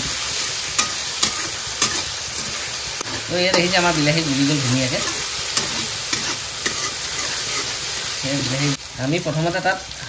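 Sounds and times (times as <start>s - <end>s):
metal spatula scraping pan: 0.0s - 8.1s
food sizzling in hot oil: 0.0s - 10.0s.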